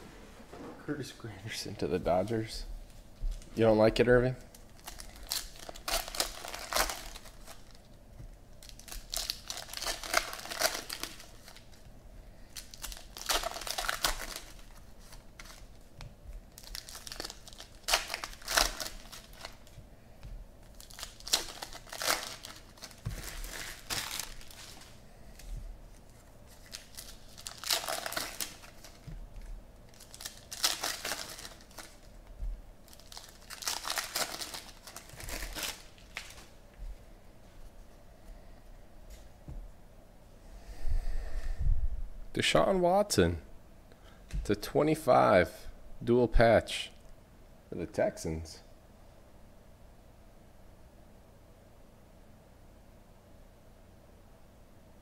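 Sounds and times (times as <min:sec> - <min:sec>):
foil wrappers tearing and crinkling: 0:04.4 - 0:07.9, 0:08.6 - 0:11.8, 0:12.5 - 0:15.8, 0:16.5 - 0:19.8, 0:20.6 - 0:32.2, 0:32.8 - 0:36.5.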